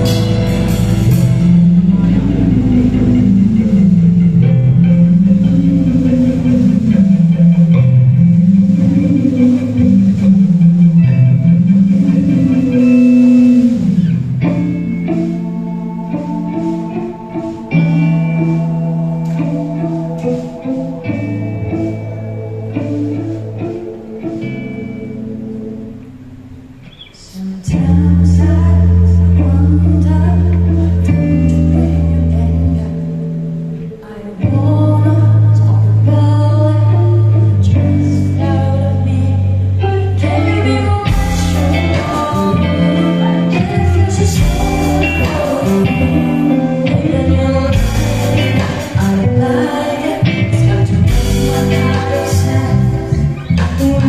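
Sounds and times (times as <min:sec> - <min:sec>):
drums and cymbals: 0:00.0 - 0:04.2, 0:41.1 - 0:42.5, 0:43.8 - 0:46.5, 0:47.7 - 0:49.4, 0:50.9 - 0:52.8
bass guitar: 0:00.0 - 0:54.0
electric guitars: 0:00.0 - 0:54.0.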